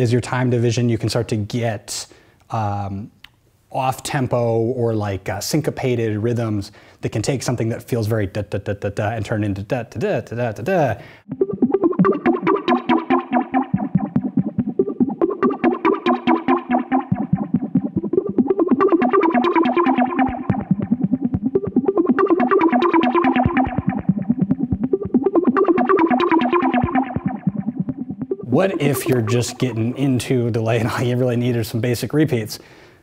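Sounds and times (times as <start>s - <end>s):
delay echoes: 11.2s - 31.7s
synthesizer plucked note sequence: 11.3s - 31.1s.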